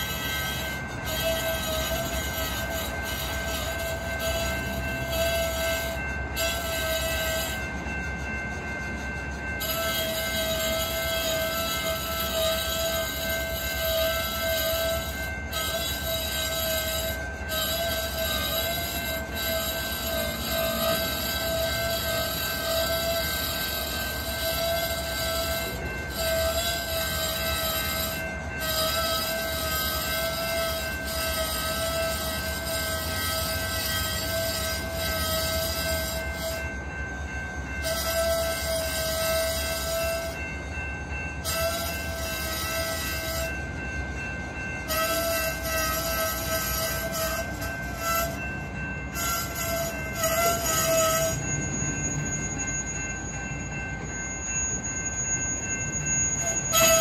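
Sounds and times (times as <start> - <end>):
steel wheels squealing: 0.0 - 57.0
train cars rumbling: 0.0 - 57.0.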